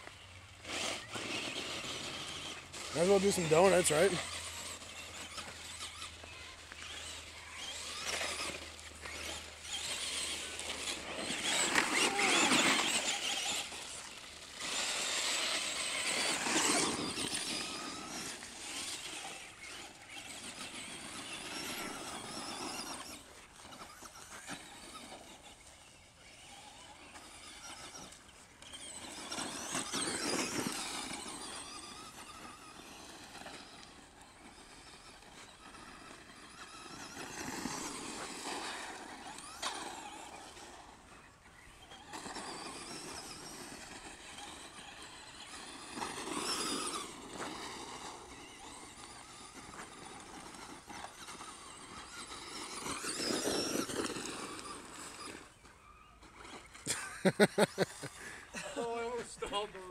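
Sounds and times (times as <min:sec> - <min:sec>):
electric motor whining: 0:00.0 - 0:59.9
tyres scrabbling on gravel: 0:00.0 - 0:59.9.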